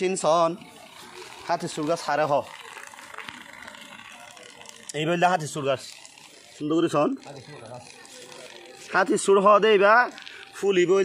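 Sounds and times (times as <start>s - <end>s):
small clicks: 2.5s - 6.6s.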